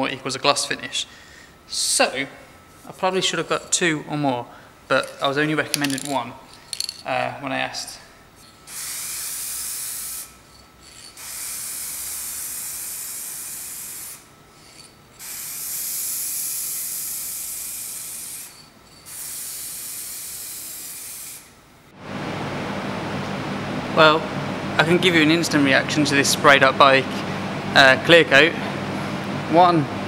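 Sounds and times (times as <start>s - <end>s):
low background noise: 0.0s - 8.6s
aerosol spray can hissing: 8.7s - 10.3s, 11.0s - 21.5s.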